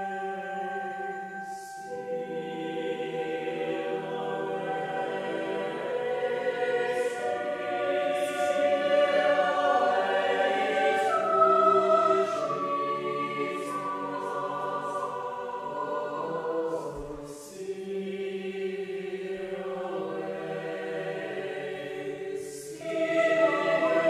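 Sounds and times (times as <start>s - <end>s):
choir singing held chords: 0.0s - 24.0s.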